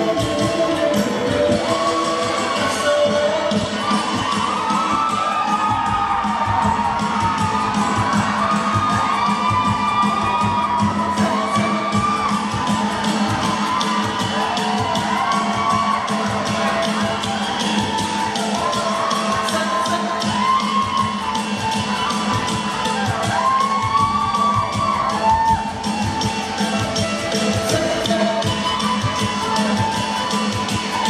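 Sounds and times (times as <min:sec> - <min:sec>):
audience cheering and shouting: 0:00.0 - 0:31.0
loud dance music: 0:00.0 - 0:31.0.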